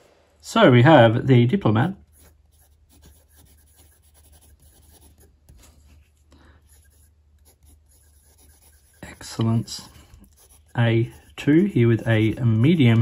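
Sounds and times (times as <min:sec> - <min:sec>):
low steady hum: 0:00.0 - 0:13.0
pen scratching on paper: 0:02.1 - 0:05.8, 0:06.7 - 0:13.0.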